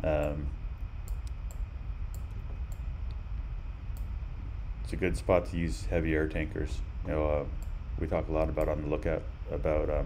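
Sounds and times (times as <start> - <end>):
low room hum: 0.0 - 10.0
computer mouse clicks: 1.0 - 3.2.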